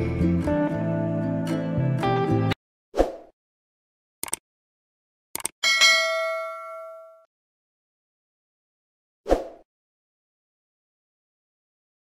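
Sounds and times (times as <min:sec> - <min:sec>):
quick clicks: 0:04.2 - 0:04.4, 0:05.4 - 0:05.6
bright metallic bell ding: 0:05.6 - 0:07.3.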